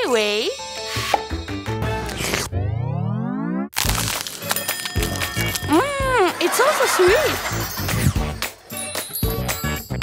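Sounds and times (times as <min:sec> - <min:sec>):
background music: 0:00.0 - 0:10.0
cartoon rising sweep: 0:02.3 - 0:03.7.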